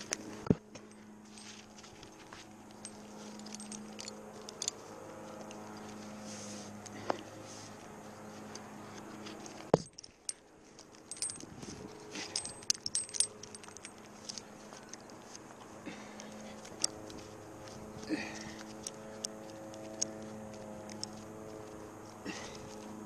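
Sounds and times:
steady low hum: 0.0s - 23.0s
metal carabiners clinking: 0.8s - 6.1s, 8.5s - 23.0s.

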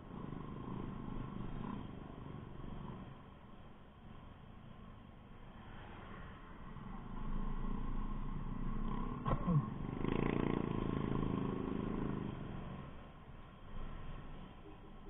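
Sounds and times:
passing motorcycle engine: 0.0s - 3.4s, 6.0s - 15.0s.

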